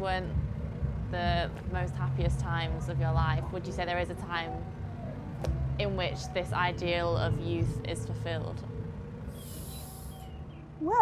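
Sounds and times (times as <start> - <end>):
low outdoor hum: 0.0 - 11.0
soft hiss: 9.2 - 10.3.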